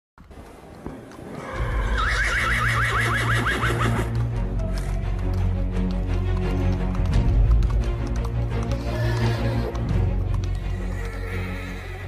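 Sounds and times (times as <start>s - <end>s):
horse whinnying: 1.4s - 4.9s, 8.7s - 9.8s, 10.5s - 12.0s.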